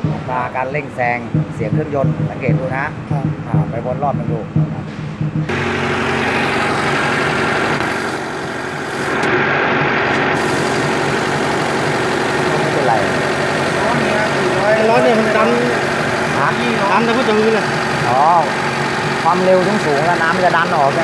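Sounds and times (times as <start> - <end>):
engine idling: 0.0 - 21.0.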